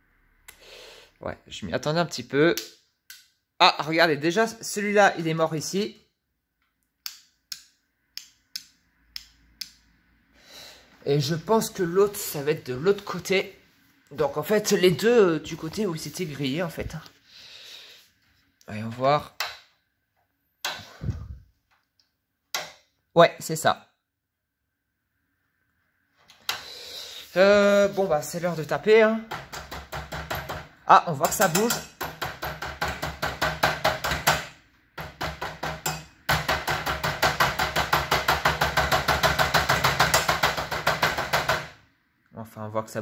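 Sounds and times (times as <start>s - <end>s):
rapid tapping on fluorescent tube: 29.3s - 41.7s.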